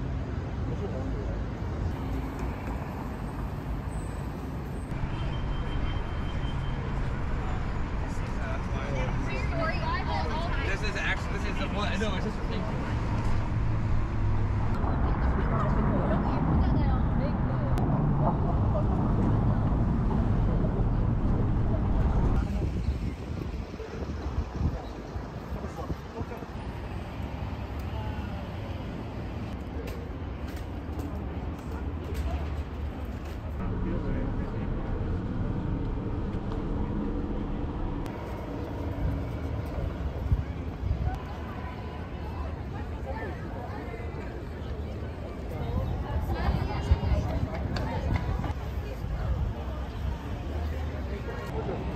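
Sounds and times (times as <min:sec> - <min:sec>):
road traffic rumble: 0:00.0 - 0:51.9
people's voices: 0:14.6 - 0:37.8, 0:39.6 - 0:51.9.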